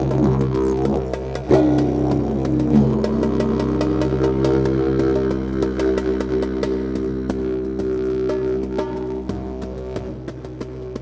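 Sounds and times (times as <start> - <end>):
didgeridoo droning: 0.0 - 11.0
drums steady beat: 0.0 - 11.0.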